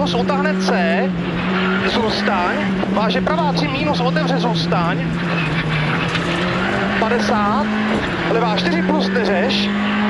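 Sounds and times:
car engine at high revs: 0.0 - 10.0
tyre and road noise: 0.0 - 10.0.

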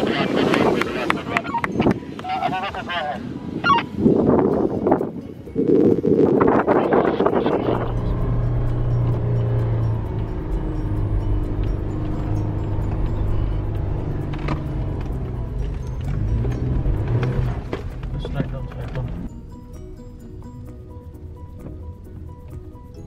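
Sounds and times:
car engine droning: 6.7 - 23.0.

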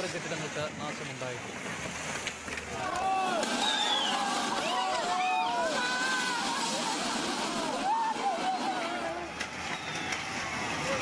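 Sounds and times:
people shouting: 2.7 - 9.4
steady rushing noise: 3.0 - 11.0.

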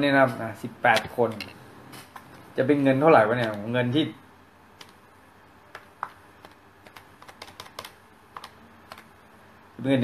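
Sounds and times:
man speaking: 0.0 - 1.5, 2.6 - 4.2, 9.8 - 10.0.

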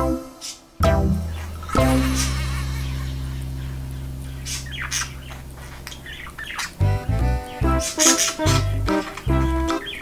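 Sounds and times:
budgerigar chirping: 1.2 - 10.0.

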